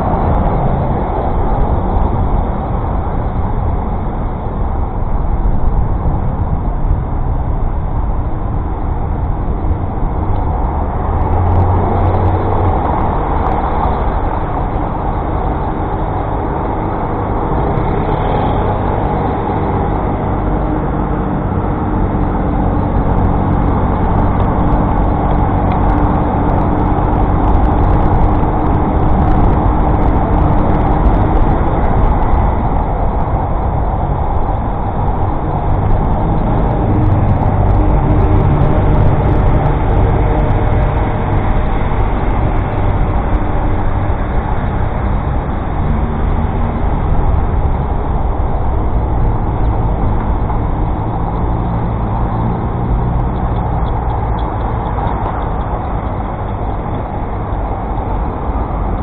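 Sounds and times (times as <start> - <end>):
city traffic: 0.0 - 59.0
wind and road noise: 0.0 - 59.0.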